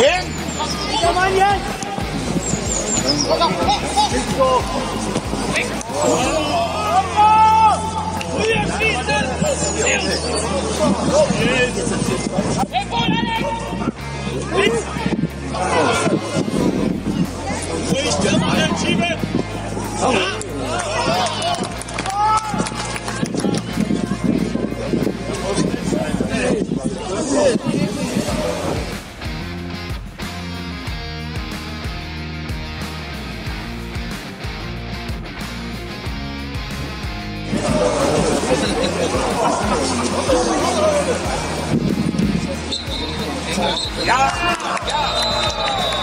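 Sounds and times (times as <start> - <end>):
players and spectators shouting: 0.0 - 29.1, 37.3 - 46.0
song with heavy beat and vocals: 28.0 - 42.6.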